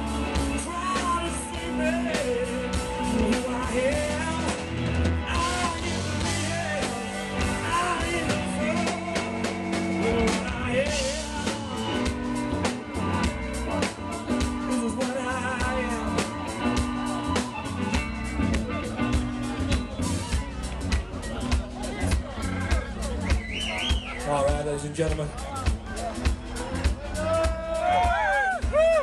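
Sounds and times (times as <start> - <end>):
bass guitar: 0.0 - 29.0
steady drum kit beat: 0.0 - 29.0.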